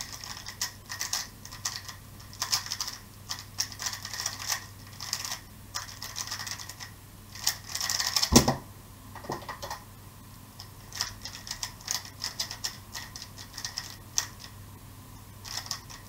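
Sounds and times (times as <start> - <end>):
puzzle cube layers clacking: 0.0 - 8.6, 10.9 - 14.6, 15.4 - 16.0.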